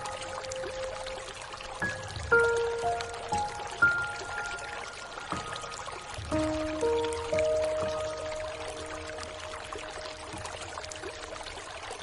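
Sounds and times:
piano notes ringing: 0.0s - 12.0s
rain hissing: 0.0s - 12.0s.

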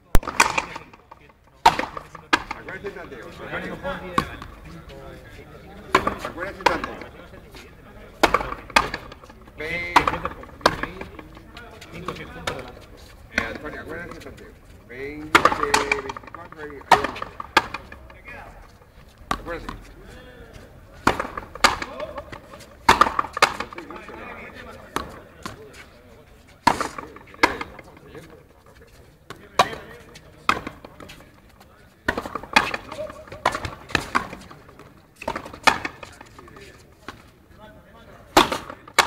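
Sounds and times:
rubber ball cracking off rackets: 0.1s - 3.0s, 8.1s - 14.4s, 15.2s - 18.2s, 21.0s - 25.6s, 26.6s - 28.1s, 32.0s - 37.2s, 38.4s - 39.0s
rubber ball knocks on court: 21.0s - 23.8s.

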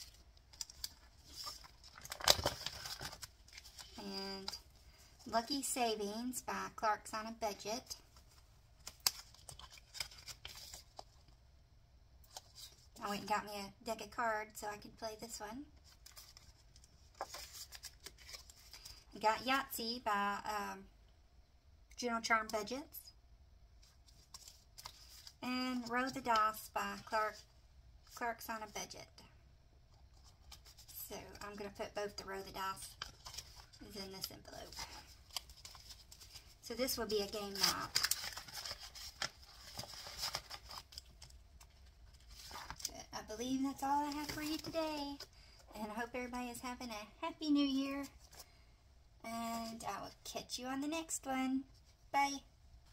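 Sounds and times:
plastic sheets rustling and crinkling: 32.8s - 45.3s
plastic pouch crinkling: 37.2s - 42.9s.

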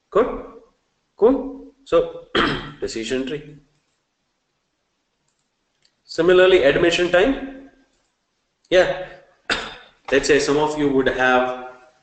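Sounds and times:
computer mouse clicking: 3.7s - 4.1s, 5.2s - 6.0s.

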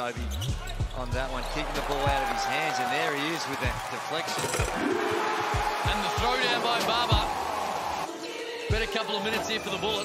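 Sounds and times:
background music: 0.0s - 10.0s
sneaker squeaks: 0.2s - 1.0s
crowd noise: 0.4s - 8.2s.

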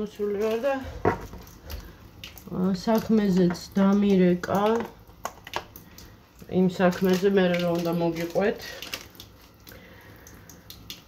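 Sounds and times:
woman speaking: 0.0s - 1.0s, 2.4s - 4.9s, 6.5s - 8.8s.

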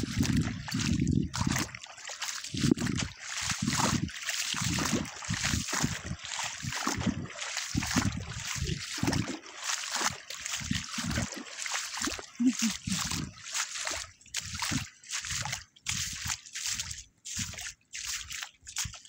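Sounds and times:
wading through splashing water: 0.0s - 19.0s.

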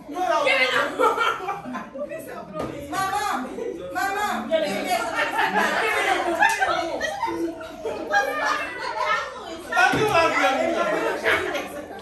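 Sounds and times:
adults and children talking: 0.0s - 12.0s.

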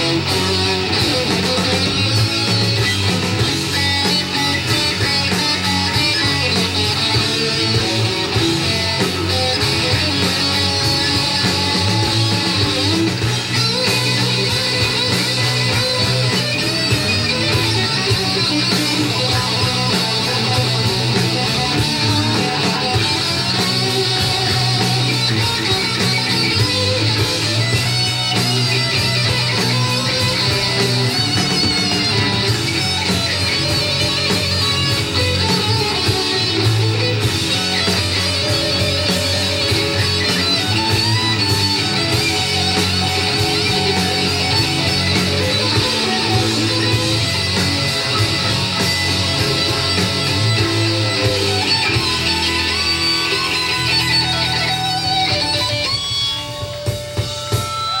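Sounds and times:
bass guitar: 0.0s - 58.0s
drums: 0.0s - 58.0s
loud electric guitar: 0.0s - 58.0s.

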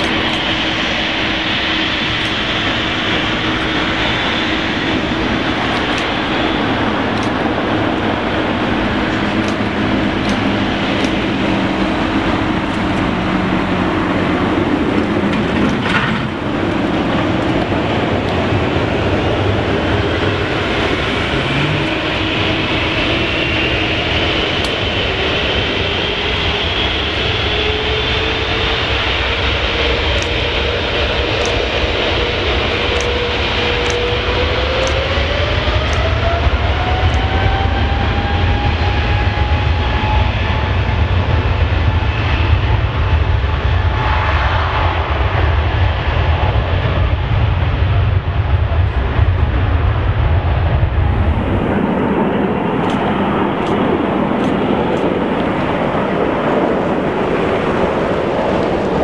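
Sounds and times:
airliner drone on approach: 0.0s - 59.0s
jet engines rumbling at takeoff: 0.0s - 59.0s.

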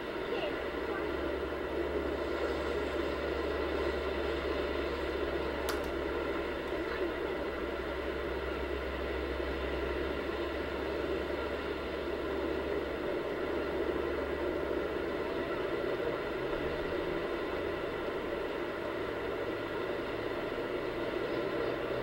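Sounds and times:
faint steady tones: 0.0s - 22.0s
low hum: 0.0s - 22.0s
steady hiss: 0.0s - 22.0s.

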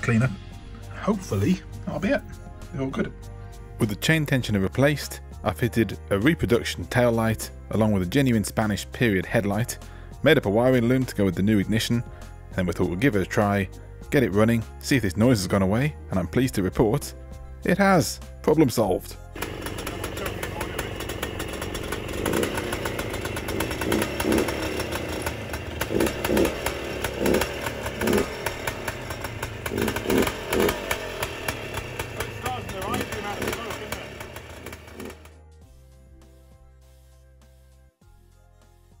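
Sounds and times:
two-stroke motorcycle engine running: 19.4s - 35.4s.

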